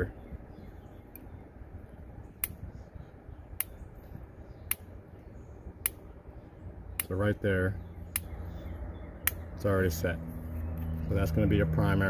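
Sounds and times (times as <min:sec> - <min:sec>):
low steady background: 0:00.0 - 0:12.0
sharp regular clicks: 0:02.4 - 0:02.7, 0:03.6 - 0:05.0, 0:05.8 - 0:06.2, 0:06.9 - 0:07.4, 0:08.0 - 0:09.6.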